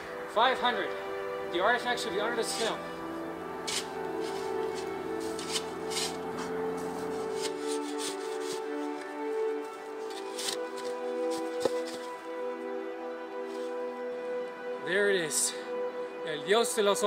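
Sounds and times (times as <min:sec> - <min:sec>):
background music: 0:00.0 - 0:17.0
shovel scraping snow: 0:03.6 - 0:12.2.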